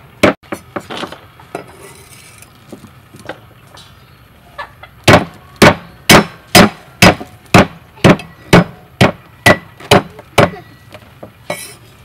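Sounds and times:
cleaver chopping on wooden board: 5.1 - 10.5.

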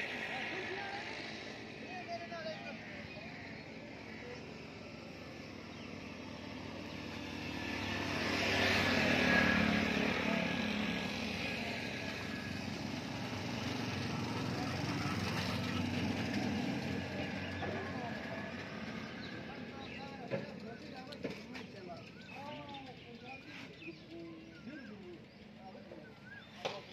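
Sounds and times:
vehicle engine running: 0.0 - 26.5.

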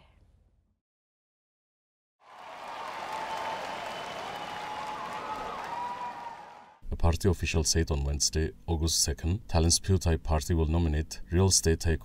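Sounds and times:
large audience applauding: 2.2 - 6.8.

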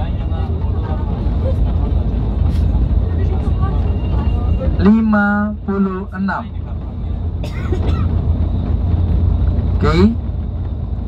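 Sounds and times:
bus road and engine rumble: 0.0 - 11.0.

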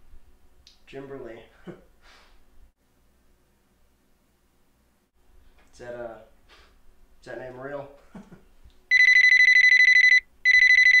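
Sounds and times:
electronic telephone ringing: 8.9 - 11.0.

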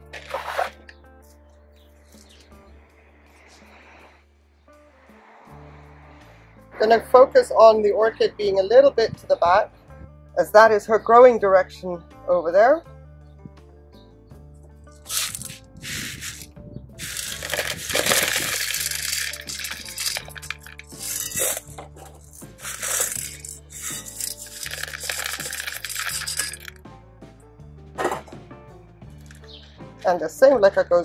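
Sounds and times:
background music with bass line: 0.0 - 31.0
clay pebbles rattling into a pot: 15.0 - 26.8.

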